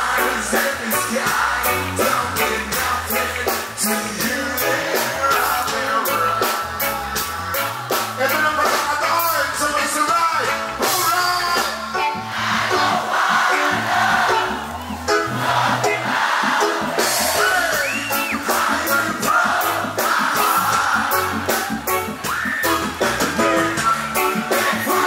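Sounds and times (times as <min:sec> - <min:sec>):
lead singer vocal: 0:00.0 - 0:11.8, 0:17.1 - 0:21.4
live reggae band: 0:00.0 - 0:25.0.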